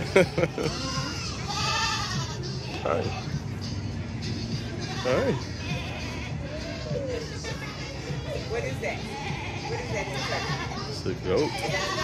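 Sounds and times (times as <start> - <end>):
goat bleating: 0.7 - 3.2, 4.8 - 6.3, 9.1 - 12.0.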